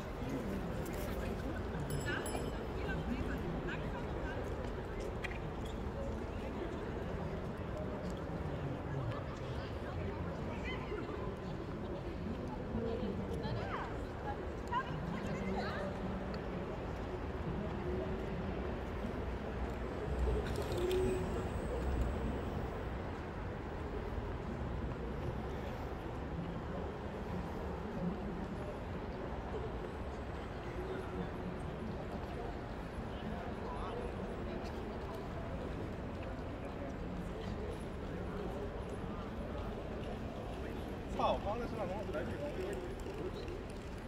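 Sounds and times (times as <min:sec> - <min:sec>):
low city rumble: 0:00.0 - 0:44.0.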